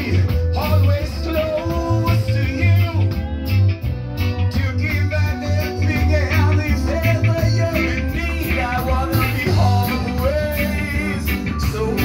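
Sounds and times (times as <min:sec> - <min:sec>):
man singing into microphone: 0:00.0 - 0:03.6, 0:04.4 - 0:12.0
pulsing bass line: 0:00.0 - 0:12.0
reggae band playing: 0:00.0 - 0:12.0.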